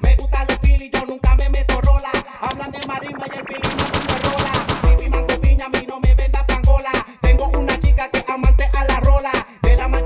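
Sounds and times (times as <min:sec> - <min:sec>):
dance music mix: 0:00.0 - 0:10.0
rapid percussive hits: 0:03.6 - 0:07.0.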